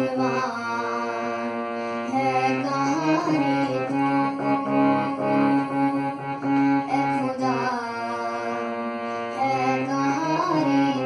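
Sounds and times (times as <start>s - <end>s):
harmonium playing held notes: 0.0s - 11.0s.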